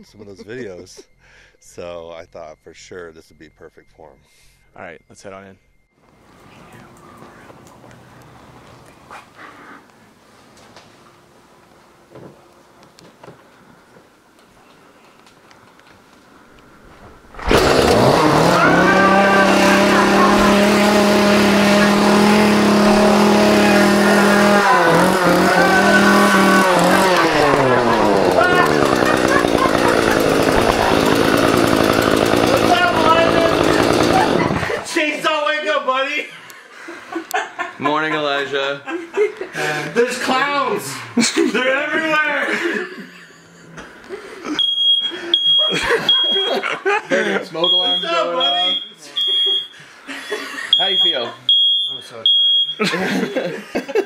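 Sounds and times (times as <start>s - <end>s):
chainsaw revving: 17.2s - 34.9s
people's voices: 17.5s - 35.5s
smoke alarm beeping: 44.6s - 46.6s, 47.6s - 49.8s, 50.6s - 53.5s.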